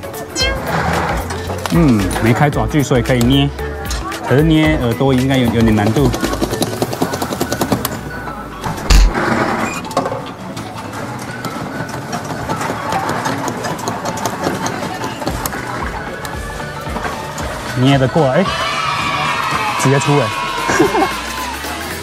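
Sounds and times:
arcade background music: 0.0s - 22.0s
loud knock: 8.8s - 9.6s.

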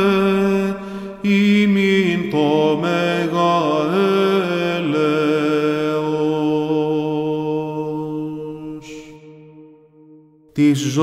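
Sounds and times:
chanting voice holding note: 0.0s - 11.0s.

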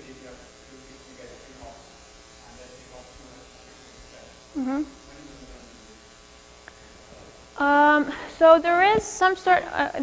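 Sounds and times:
electrical buzz: 0.0s - 10.0s.

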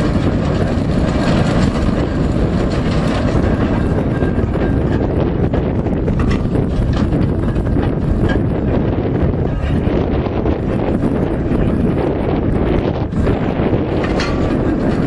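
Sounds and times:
steam traction engine running: 0.0s - 15.0s
wind buffeting microphone: 0.0s - 15.0s.

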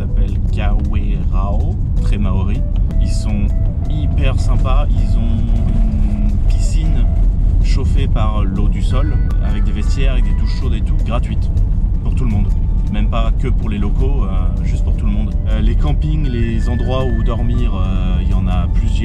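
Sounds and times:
music playing: 0.0s - 19.0s
vehicle road and engine rumble: 0.0s - 19.0s
voice: 0.0s - 19.0s.

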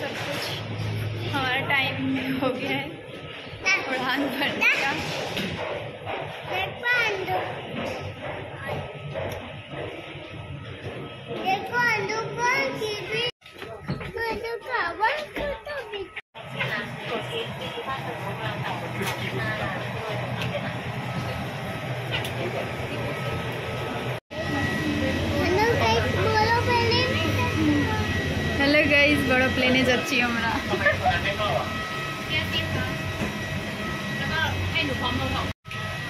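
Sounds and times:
child's voice: 6.5s - 7.6s, 11.4s - 13.3s, 14.1s - 16.2s, 25.4s - 28.0s.

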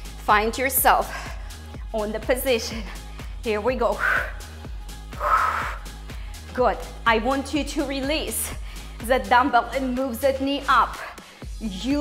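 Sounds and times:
workout music with steady beat: 0.0s - 12.0s
woman breathing out hard: 5.2s - 6.4s.

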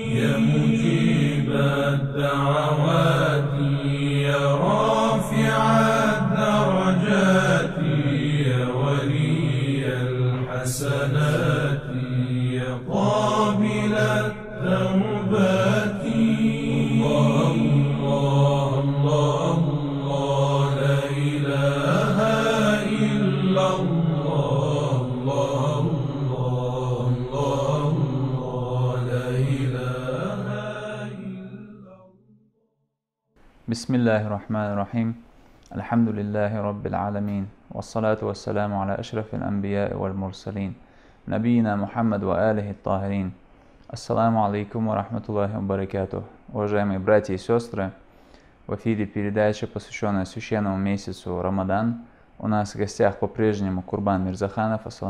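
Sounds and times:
steady low drone: 0.0s - 31.7s
person chanting melodic phrases: 0.0s - 31.8s.

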